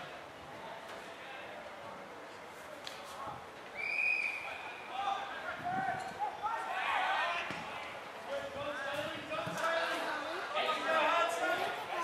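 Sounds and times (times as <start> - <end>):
umpire's whistle blast: 3.8 - 4.5
players and spectators shouting: 4.2 - 12.0.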